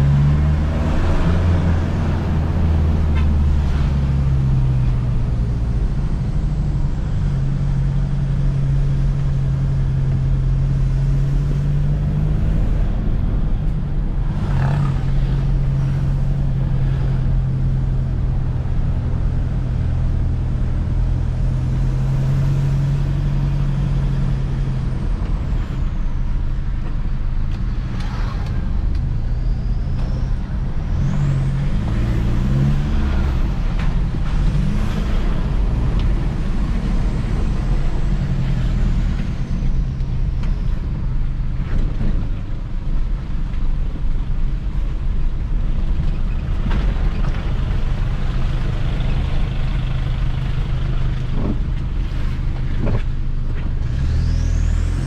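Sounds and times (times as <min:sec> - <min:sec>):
engine drone inside cab: 0:00.0 - 0:55.0.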